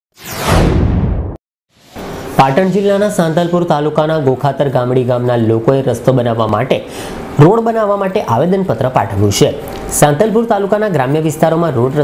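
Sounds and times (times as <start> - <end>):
whoosh falling in pitch: 0.2 - 2.4.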